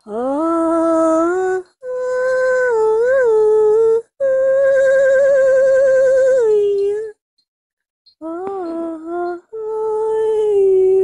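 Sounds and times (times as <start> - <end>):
person humming slow melody: 0.0 - 7.1, 8.2 - 11.0.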